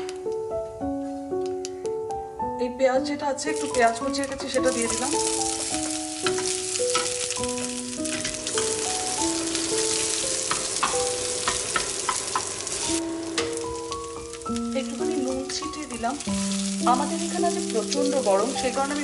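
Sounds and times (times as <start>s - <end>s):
crackles of frying: 0.0s - 1.9s, 3.0s - 19.0s
soft background music: 0.0s - 19.0s
onion sizzling in hot oil: 3.4s - 19.0s
wooden spatula tapping: 5.8s - 8.8s, 10.4s - 12.5s, 13.3s - 16.3s.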